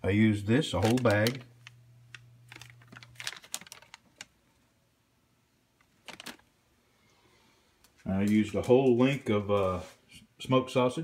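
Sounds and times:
plastic bag crackling: 0.7 - 4.6, 5.8 - 6.5.

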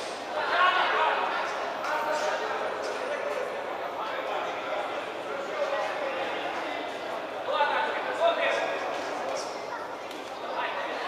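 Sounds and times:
voices calling out in echoing hall: 0.0 - 11.0.

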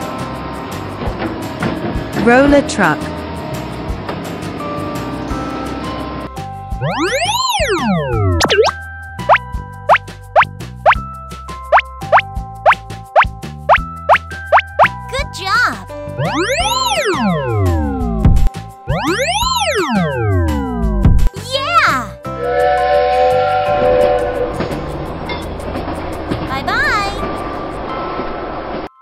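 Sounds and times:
children's music: 6.1 - 10.2, 10.9 - 22.6, 26.5 - 27.6
cartoon boing: 6.8 - 9.4, 16.2 - 17.4
rough rolling noise: 23.8 - 28.9.

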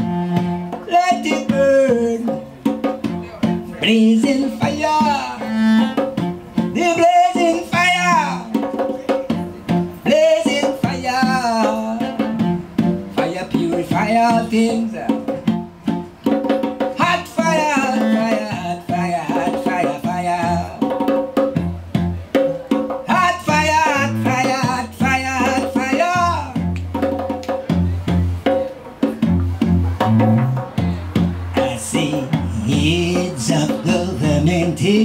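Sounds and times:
bowed cello: 0.0 - 0.9, 4.6 - 6.8, 11.3 - 13.4, 29.2 - 34.7
hand drum beat: 0.0 - 35.0
low bass notes: 21.6 - 22.3, 26.2 - 26.9, 27.6 - 28.4, 29.2 - 35.0.

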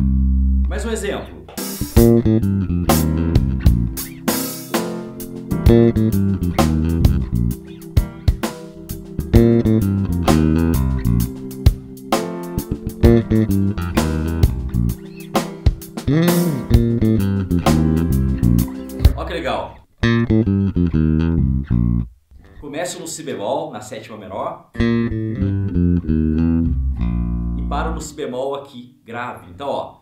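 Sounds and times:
electric bass groove: 0.0 - 22.6, 24.8 - 28.1
drum track: 0.9 - 19.6.

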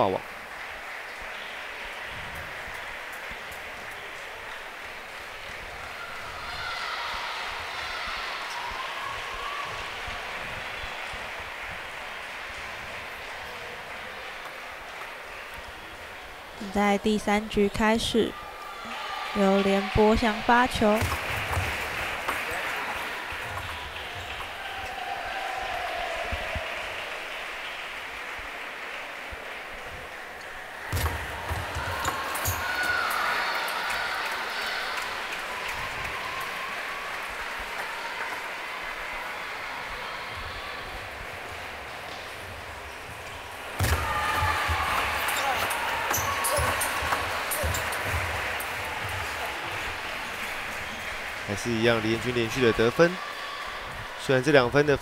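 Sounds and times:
crowd noise in sports hall: 0.0 - 55.0
shouts and cheering: 5.4 - 14.4, 17.8 - 55.0.

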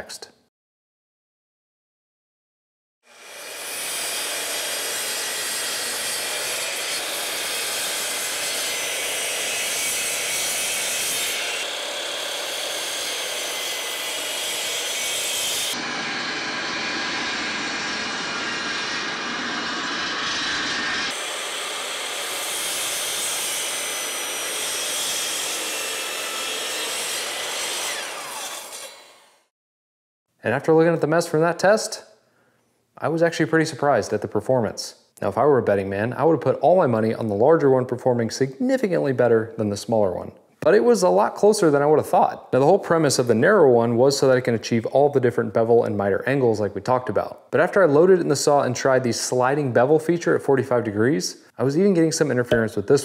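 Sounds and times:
miter saw cutting wood: 3.1 - 29.5
shop vacuum running: 14.2 - 24.8.

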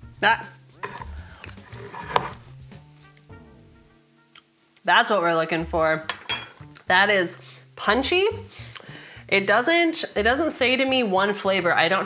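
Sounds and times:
background music of held notes: 0.0 - 12.0.

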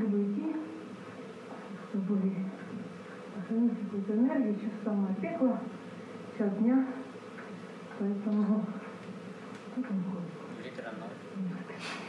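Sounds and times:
woman speaking through speakers: 0.0 - 0.8, 1.9 - 2.7, 3.4 - 5.7, 6.4 - 7.1, 8.0 - 8.8.

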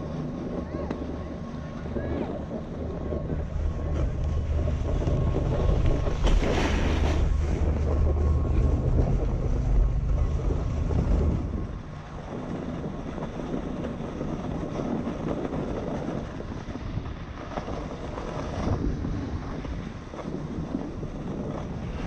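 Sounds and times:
wind buffeting microphone: 0.0 - 22.0
skis sliding hiss on snow: 6.2 - 7.3.

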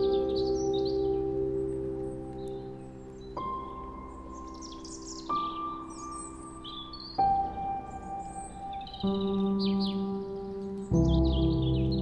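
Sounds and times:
birdsong chirping: 0.0 - 12.0
soft lullaby music: 0.0 - 12.0.

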